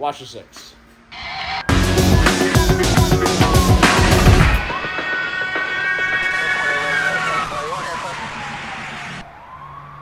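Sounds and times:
police siren wailing: 0:01.1 - 0:01.9, 0:03.0 - 0:10.0.

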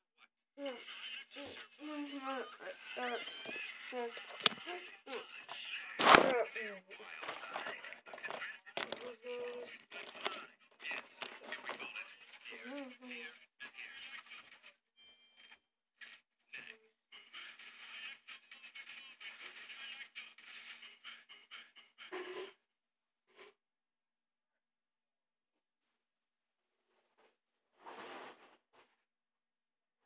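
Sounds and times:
faint speech: 0:00.6 - 0:14.8, 0:16.5 - 0:22.6.

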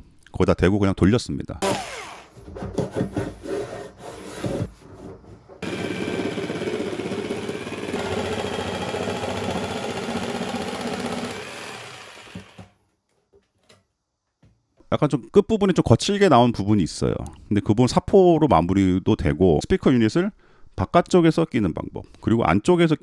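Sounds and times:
cordless drill driving screws: 0:01.6 - 0:02.3, 0:05.6 - 0:12.7
jigsaw cutting wood: 0:01.6 - 0:02.4, 0:05.6 - 0:12.8.

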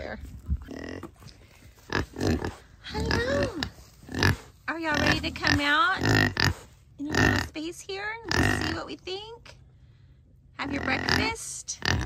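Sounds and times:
piglet grunt: 0:01.9 - 0:04.4.

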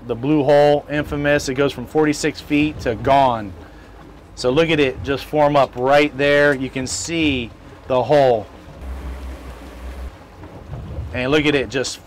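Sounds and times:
boat motors running: 0:00.0 - 0:12.0
wind on microphone: 0:08.8 - 0:11.3.

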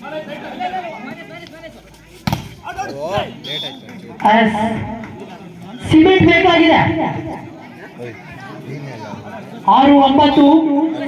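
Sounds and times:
volleyball smack: 0:02.2 - 0:02.6.

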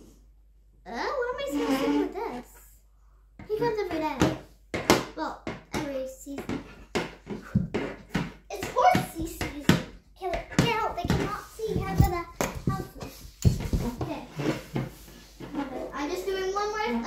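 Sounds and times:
child's voice: 0:00.8 - 0:02.8, 0:03.4 - 0:04.4, 0:05.0 - 0:06.7, 0:08.5 - 0:14.4, 0:15.6 - 0:17.0
toy horse clacking on wooden floor: 0:05.7 - 0:14.2.

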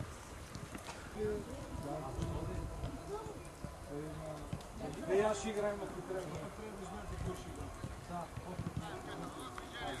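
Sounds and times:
footballs being kicked: 0:07.2 - 0:09.3.

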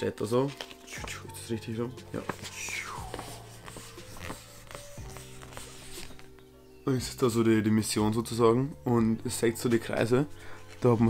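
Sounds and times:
paper crinkling: 0:00.2 - 0:01.2, 0:02.1 - 0:06.4, 0:09.8 - 0:11.0.

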